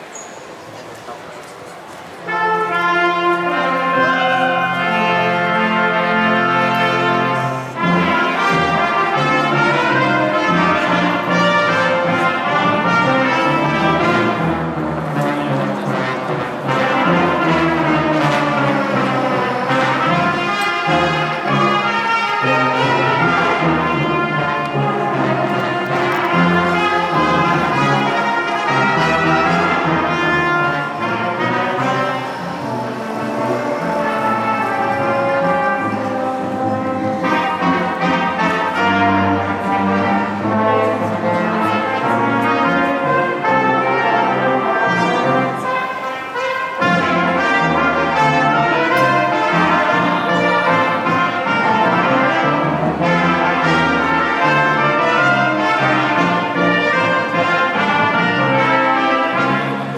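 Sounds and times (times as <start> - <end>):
wind band playing: 0.0 - 59.9.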